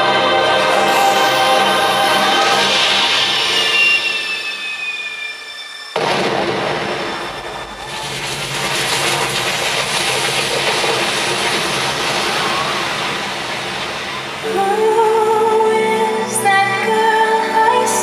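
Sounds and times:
music on a falling tone: 0.0s - 5.9s
fountain water jets rushing: 7.8s - 15.1s.

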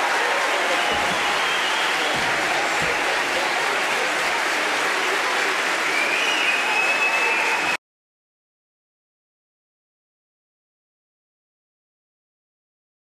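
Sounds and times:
audience applauding: 0.0s - 7.8s.

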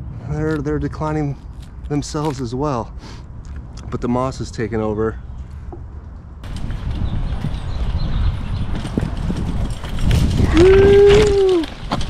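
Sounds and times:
wind rumbling on microphone: 0.0s - 12.0s
rustling: 8.6s - 12.0s.

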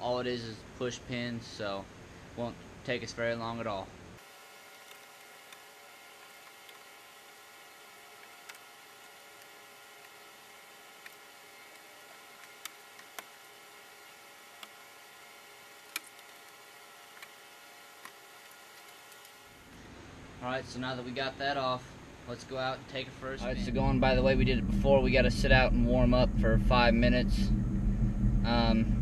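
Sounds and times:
steady low hiss: 0.0s - 29.0s.

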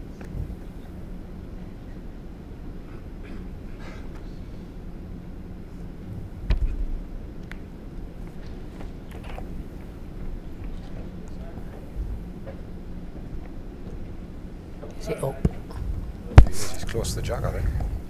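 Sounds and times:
low hum of hall: 0.0s - 18.0s.

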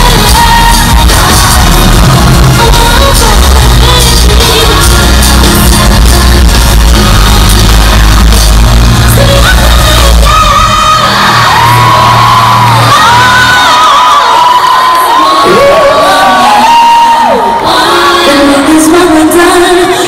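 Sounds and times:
fans whooping and cheering: 0.0s - 18.8s
live pop concert music: 0.0s - 20.0s.

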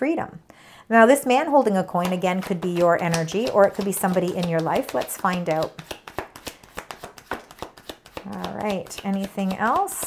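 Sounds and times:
cards being shuffled: 2.0s - 10.0s.

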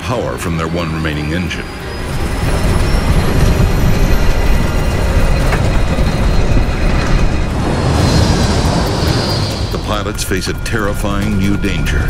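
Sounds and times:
dramatic music: 0.0s - 12.0s
high engine whine: 0.0s - 12.0s
jet engine rumble: 0.0s - 12.0s.

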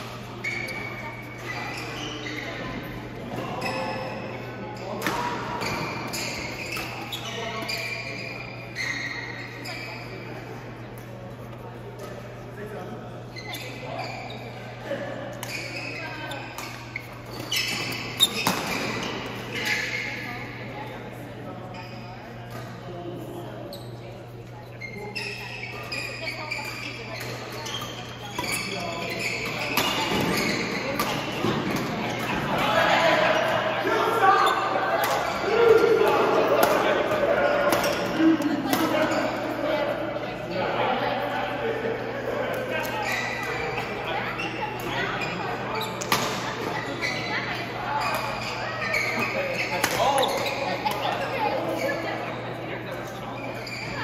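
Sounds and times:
sneaker squeaks on floor: 0.0s - 10.4s, 13.2s - 21.0s, 21.6s - 22.8s, 23.6s - 40.5s, 42.7s - 54.0s
players' voices: 0.0s - 54.0s.

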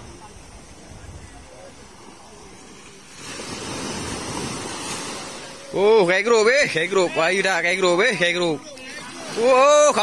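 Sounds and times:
sea wave breaking on beach: 1.8s - 10.0s.

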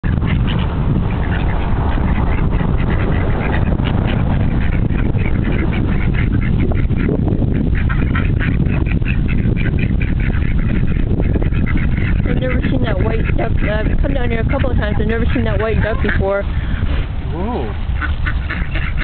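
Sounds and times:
ducks quacking: 0.0s - 19.0s
steady low rumble: 0.0s - 19.0s.

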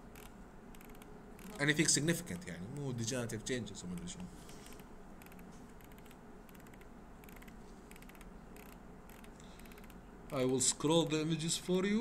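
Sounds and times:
mouse scroll wheel ticking: 0.1s - 1.6s, 3.9s - 11.1s.

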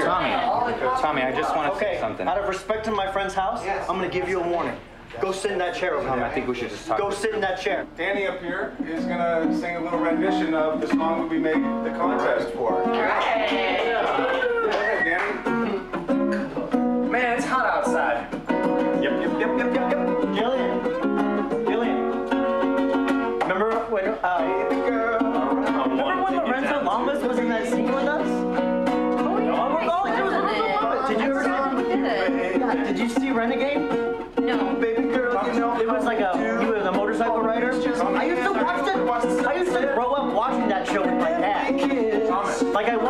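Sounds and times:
ukulele strummed: 8.7s - 43.0s
man singing: 18.8s - 22.3s, 23.4s - 43.0s.

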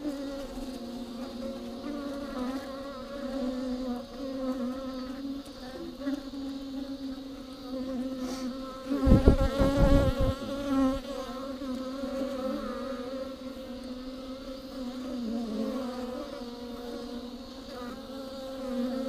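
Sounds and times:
bees buzzing: 0.0s - 19.0s
low thumps on microphone: 9.0s - 10.5s.

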